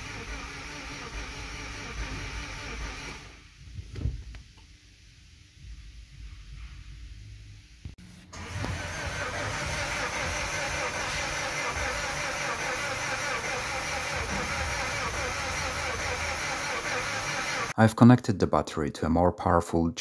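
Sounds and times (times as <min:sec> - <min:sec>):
diesel engine cranking by starter: 0:00.0 - 0:03.4, 0:08.3 - 0:17.8.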